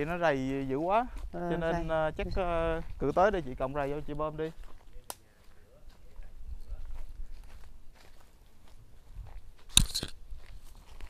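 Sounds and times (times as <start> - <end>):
footsteps crunching through dry leaves: 0.0 - 11.0.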